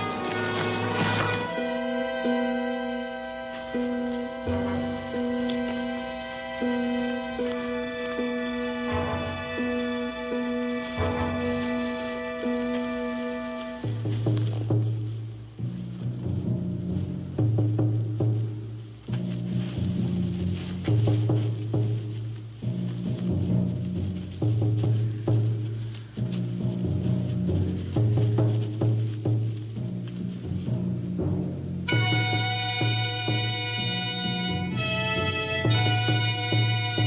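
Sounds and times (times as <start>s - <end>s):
drum strokes: 3.8s - 37.0s
low two-note figure: 4.2s - 13.9s.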